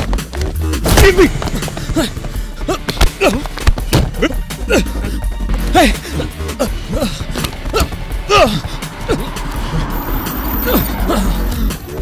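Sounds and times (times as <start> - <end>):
background music: 0.0 - 12.0
men grunting: 0.9 - 11.8.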